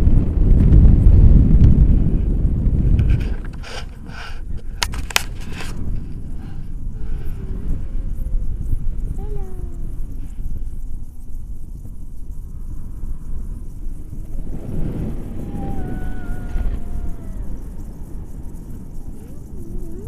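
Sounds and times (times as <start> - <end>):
wind buffeting microphone: 0.0 - 20.0
drawn-out voice-like call: 14.8 - 20.0.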